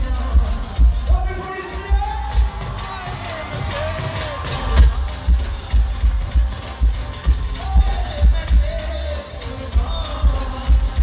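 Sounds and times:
live band music with heavy bass: 0:00.0 - 0:11.0.

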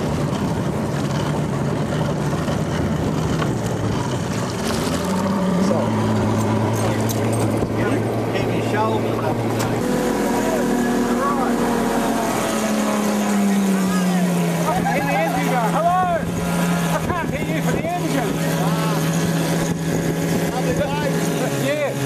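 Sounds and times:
motorboat engine running: 0:00.0 - 0:22.0
water rushing: 0:00.0 - 0:22.0
wind: 0:00.0 - 0:22.0.

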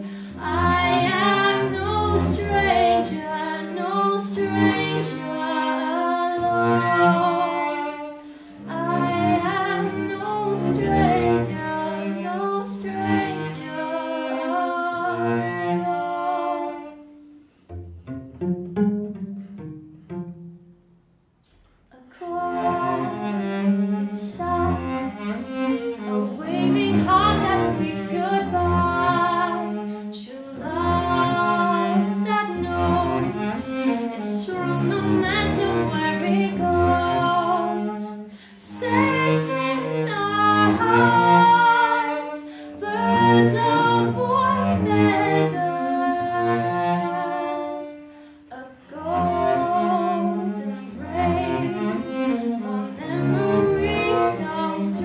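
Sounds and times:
bowed cello: 0:00.0 - 0:55.0
woman singing wordlessly: 0:00.3 - 0:07.6, 0:08.6 - 0:16.7, 0:21.9 - 0:23.3, 0:24.2 - 0:24.9, 0:26.1 - 0:47.5, 0:48.5 - 0:52.0, 0:52.6 - 0:55.0.

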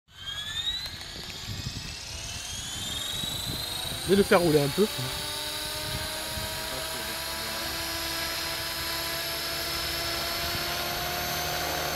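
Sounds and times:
rc helicopter motor whine: 0:00.1 - 0:11.9.

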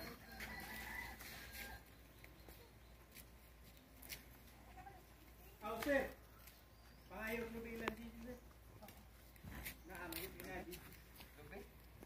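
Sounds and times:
distant bird calls: 0:01.4 - 0:03.8, 0:05.4 - 0:08.7.

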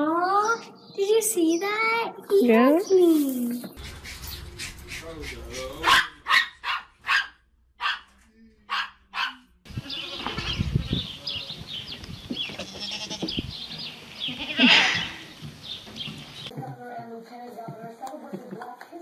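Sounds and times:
dog barking: 0:05.8 - 0:09.5
goat bleating: 0:09.7 - 0:10.6, 0:12.6 - 0:13.4, 0:14.2 - 0:15.3.

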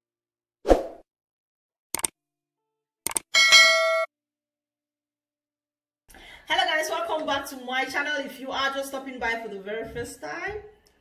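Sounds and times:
quick clicks: 0:01.9 - 0:02.2, 0:03.0 - 0:03.3
bright bell-like ding: 0:03.4 - 0:04.1.

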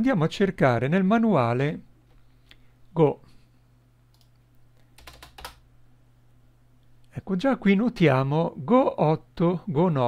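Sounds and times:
computer keyboard keystrokes: 0:04.1 - 0:04.4, 0:05.0 - 0:05.6
faint clicks: 0:04.1 - 0:04.9.

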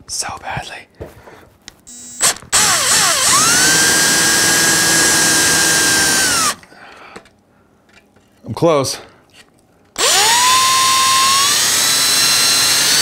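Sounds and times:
cordless drill whine: 0:01.9 - 0:06.6, 0:10.0 - 0:13.0.

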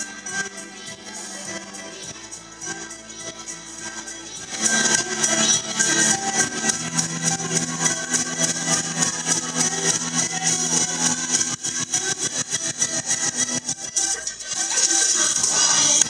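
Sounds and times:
quick percussion beat: 0:00.0 - 0:16.0.

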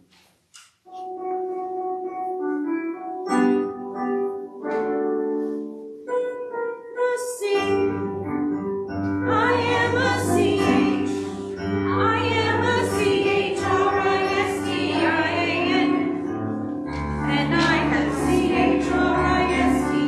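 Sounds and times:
keyboard playing held notes: 0:00.9 - 0:20.0
voices singing along: 0:09.3 - 0:16.3, 0:17.3 - 0:20.0.

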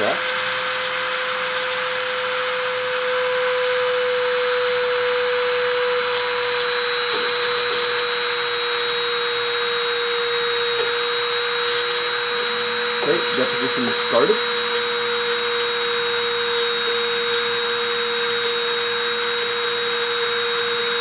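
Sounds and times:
rotary tool whining: 0:00.0 - 0:21.0.

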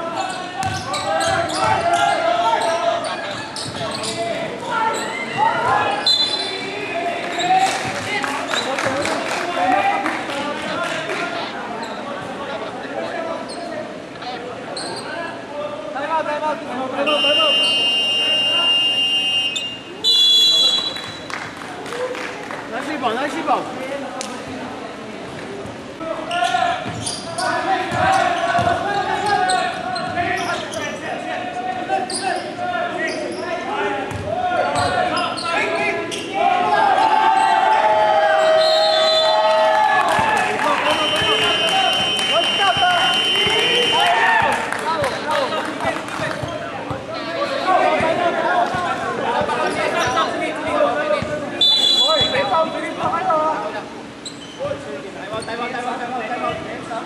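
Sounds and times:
voices in echoing gym: 0:00.0 - 0:57.0.

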